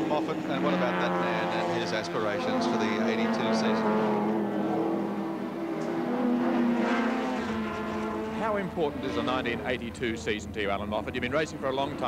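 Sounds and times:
racing car engines at speed: 0.0s - 12.0s.

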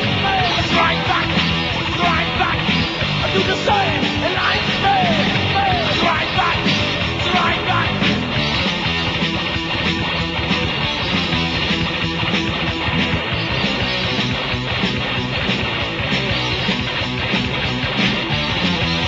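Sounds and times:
heavy metal band playing: 0.0s - 19.0s.

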